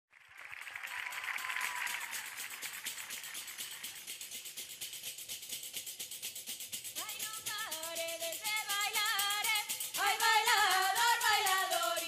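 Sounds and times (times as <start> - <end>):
frame drums with jingles: 1.7 - 12.0.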